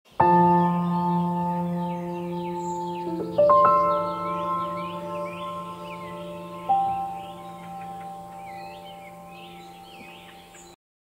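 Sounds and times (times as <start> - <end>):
birds chirping: 0.1 - 10.8
singing bowl note ringing: 2.0 - 10.3.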